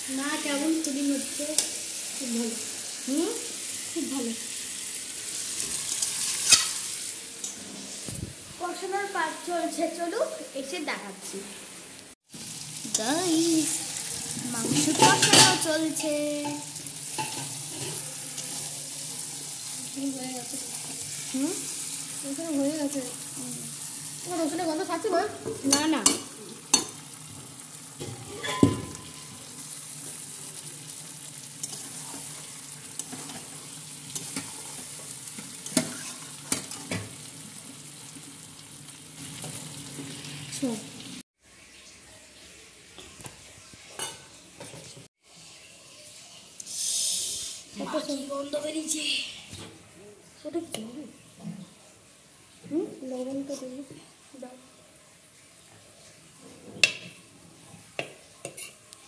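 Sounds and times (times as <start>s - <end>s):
meat sizzling in a pan: 0.0s - 11.6s, 12.2s - 44.5s, 45.1s - 49.1s, 50.3s - 59.0s
metal utensils stirring: 5.6s - 7.9s, 14.1s - 23.0s, 24.4s - 27.1s, 28.0s - 30.3s, 31.5s - 37.1s, 58.0s - 58.8s.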